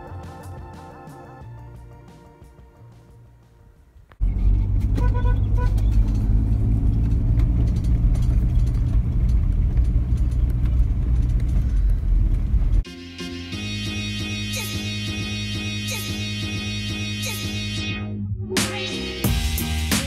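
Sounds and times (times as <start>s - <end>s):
car interior exhaust rumble: 4.1s - 12.8s.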